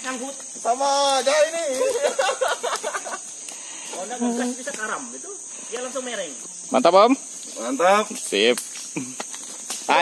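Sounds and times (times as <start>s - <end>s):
men talking: 0.0s - 9.2s
insects droning: 0.0s - 10.0s.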